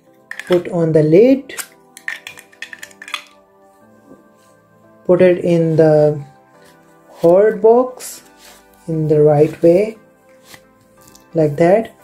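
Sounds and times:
soft background music: 0.0 - 12.0
plastic cap clicks: 0.3 - 0.7, 1.5 - 3.4.

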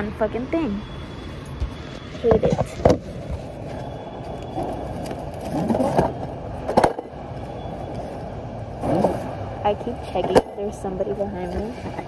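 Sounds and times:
items knocking and scraping: 2.1 - 7.1.

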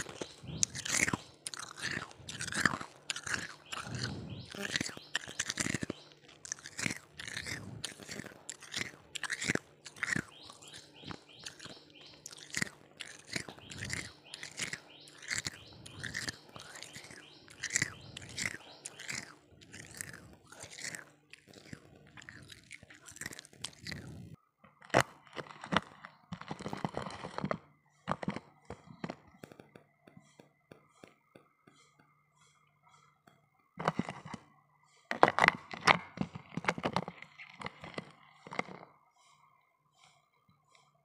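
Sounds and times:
person chewing ice: 0.0 - 33.2, 33.8 - 40.9.

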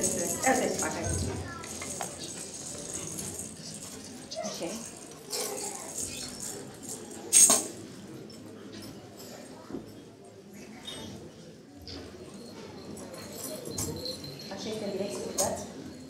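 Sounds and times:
tambourine jingles rattling: 0.0 - 7.7, 13.2 - 16.0.

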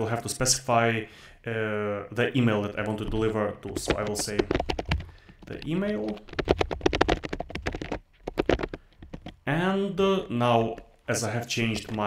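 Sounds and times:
fast typing on keyboard: 2.7 - 9.5, 11.6 - 12.0.

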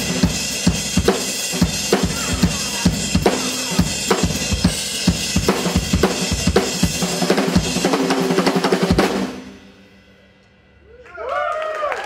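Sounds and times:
drum kit playing: 0.0 - 10.4.

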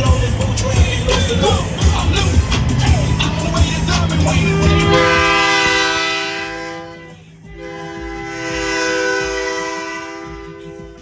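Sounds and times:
truck air horn blasts: 4.2 - 11.0.

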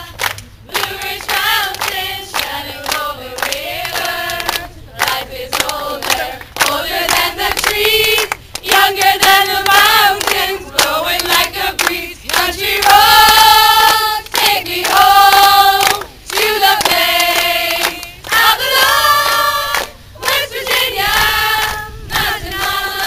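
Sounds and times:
women singing together: 0.0 - 23.0
hand claps: 0.1 - 20.0.

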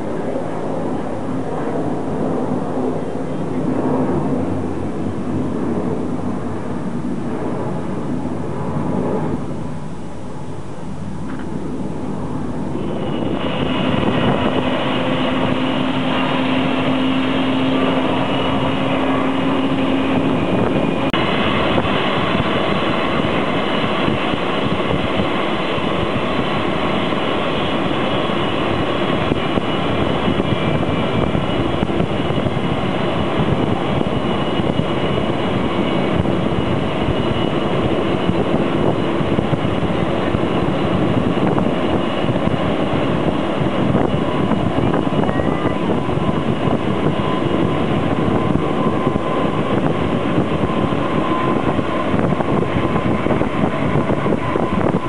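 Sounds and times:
jet engine noise: 0.0 - 55.0.

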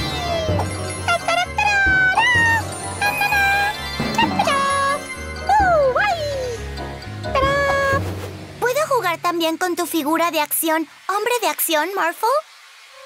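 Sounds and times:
cartoon cat meowing: 0.0 - 6.1, 7.4 - 8.0
cartoon music with low beat: 0.0 - 9.4.

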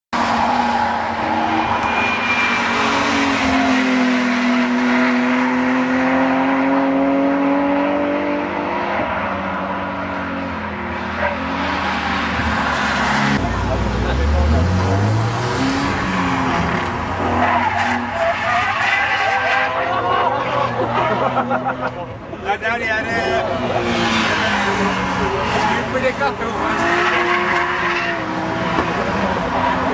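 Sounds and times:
tyre squeal: 0.2 - 3.9, 16.8 - 21.1
race car engines at high revs: 0.2 - 29.9
deeper engine revving: 10.7 - 17.4.

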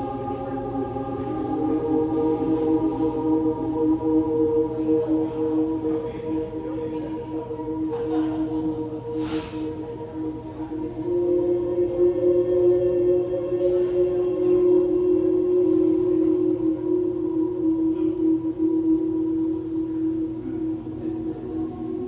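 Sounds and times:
ambient drone music: 0.0 - 22.0.

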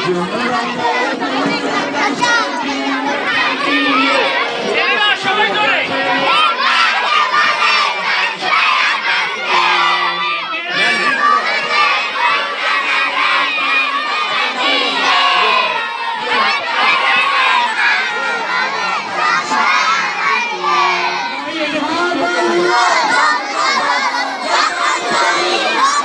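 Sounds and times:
children shouting and chattering: 0.0 - 26.0.

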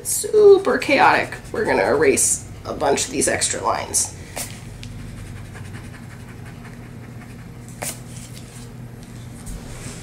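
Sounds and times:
steady low hum: 0.0 - 10.0
eraser rubbing on paper: 4.4 - 8.4.

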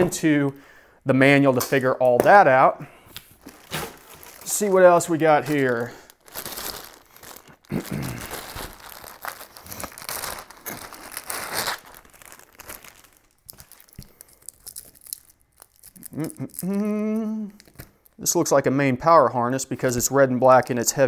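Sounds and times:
wires rustling: 1.5 - 16.8
plastic bag crinkling: 3.3 - 16.8, 17.5 - 18.2
person humming: 16.0 - 17.6.

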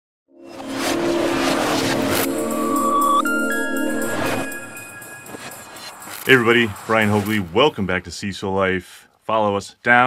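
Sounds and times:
sustained low chord: 0.4 - 6.5.

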